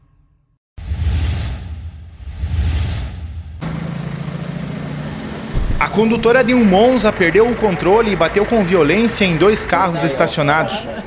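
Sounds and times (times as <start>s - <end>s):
deep rumble: 0.8s - 4.0s, 5.5s - 6.3s
whooshing swells: 0.8s - 4.0s
street sound: 0.8s - 11.0s
vehicle engine idling: 3.6s - 11.0s.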